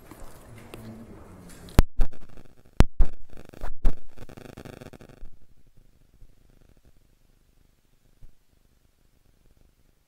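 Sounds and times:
room noise: 0:00.0 - 0:10.0.

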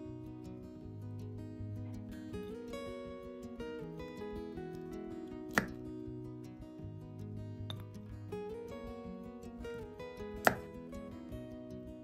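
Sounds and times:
acoustic guitar music: 0:00.0 - 0:12.0
sharp knock: 0:10.5 - 0:10.7.

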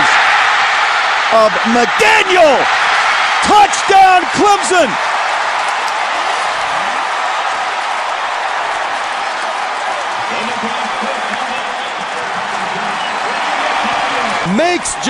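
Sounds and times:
stadium crowd cheering: 0:00.0 - 0:15.0.

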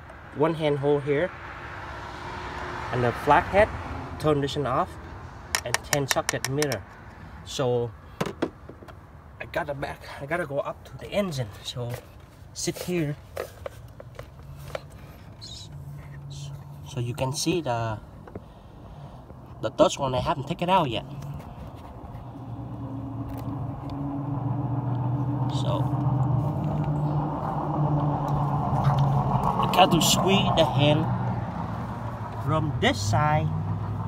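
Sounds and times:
clicks and rustles of handling parts: 0:05.5 - 0:07.2, 0:11.5 - 0:16.7.

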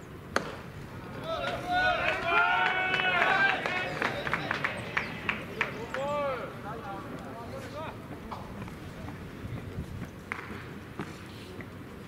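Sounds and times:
baseball sharp crack: 0:00.3 - 0:05.7, 0:10.3 - 0:11.2
voices calling out together: 0:01.0 - 0:06.8.

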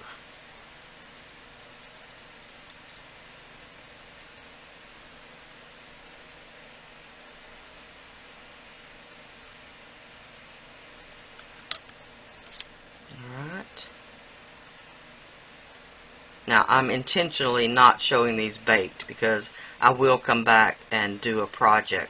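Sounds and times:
low steady hiss: 0:00.0 - 0:22.0
blade click and scrape on tile: 0:11.6 - 0:12.7.

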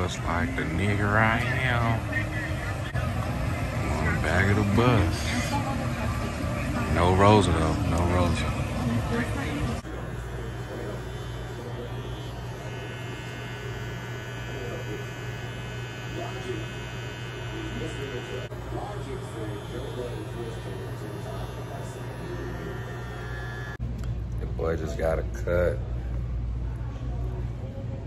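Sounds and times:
electric hair clippers buzzing: 0:00.0 - 0:23.8
high whine: 0:00.0 - 0:23.8.

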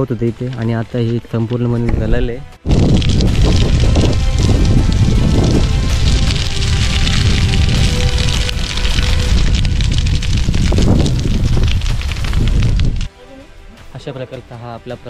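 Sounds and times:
grass fire crackling: 0:00.0 - 0:15.0
wind rumble on microphone: 0:01.8 - 0:13.1.

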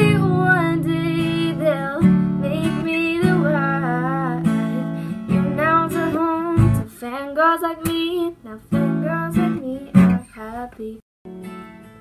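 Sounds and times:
acoustic guitar strumming: 0:00.0 - 0:06.8, 0:11.3 - 0:12.0
woman singing: 0:00.0 - 0:11.0.

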